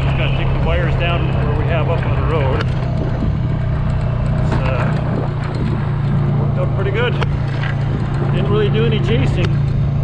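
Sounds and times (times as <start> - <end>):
atv engine running: 0.0 - 10.0.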